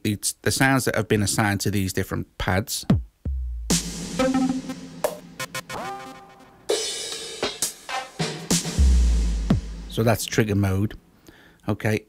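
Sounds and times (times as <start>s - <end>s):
sharp percussion hits: 3.7s - 10.2s
synth note: 4.2s - 6.8s.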